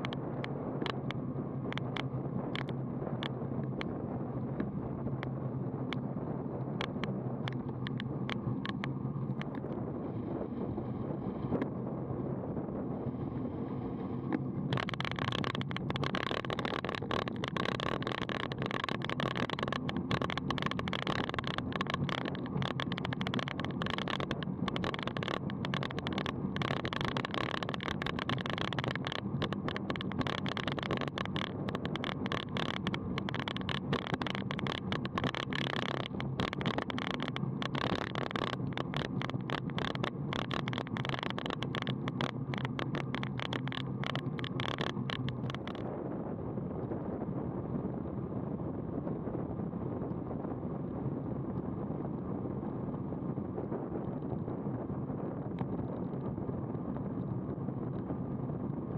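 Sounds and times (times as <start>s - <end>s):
bike rattling over rough pavement: 0.0s - 3.9s, 14.3s - 45.8s
bike tyres rolling: 0.0s - 3.9s, 14.3s - 45.8s
wind on microphone: 0.0s - 58.9s.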